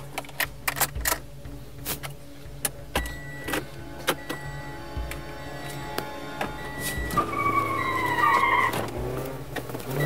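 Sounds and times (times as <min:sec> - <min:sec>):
sharp clicks and knocks: 0:00.0 - 0:06.6
car humming: 0:00.0 - 0:10.0.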